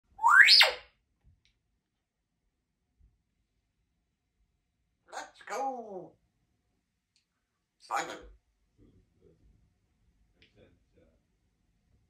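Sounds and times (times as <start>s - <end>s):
parrot whistle gliding in pitch: 0.2s - 0.8s.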